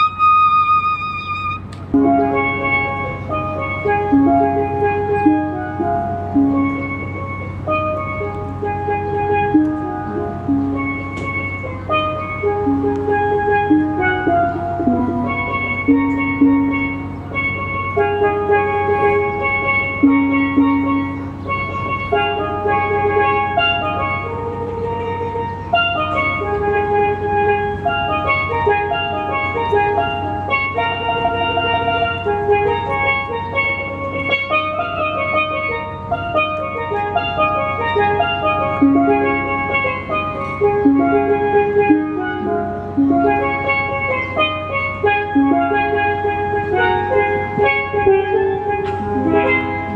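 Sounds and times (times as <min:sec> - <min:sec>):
steel pans playing melody: 0:00.0 - 0:49.9.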